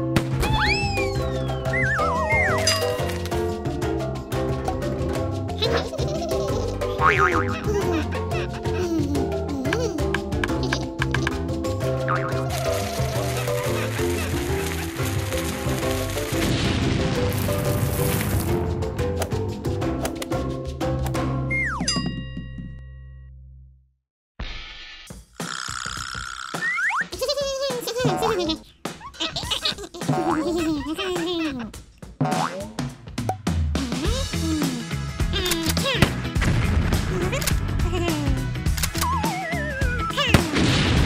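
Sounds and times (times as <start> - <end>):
melodic background music: 0.0 - 22.0, 34.1 - 41.0
cartoon explosion sound effect: 0.3 - 2.6.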